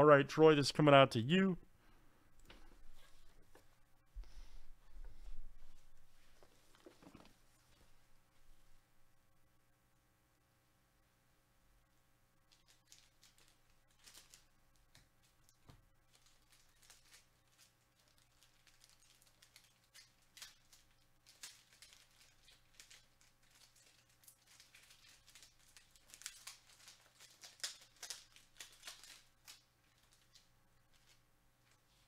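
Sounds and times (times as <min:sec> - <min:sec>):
wrappers crinkling and tearing: 0:12.4 - 0:32.0.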